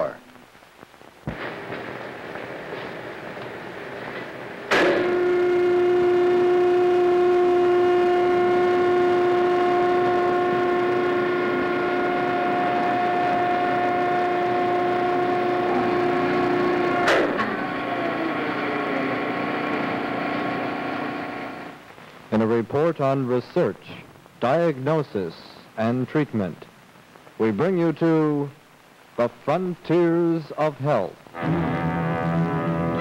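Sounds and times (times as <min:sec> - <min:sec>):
fainter lower steady tone: 0:05.0 - 0:19.2
steady pitched tone: 0:05.0 - 0:19.7, 0:31.3 - 0:33.0.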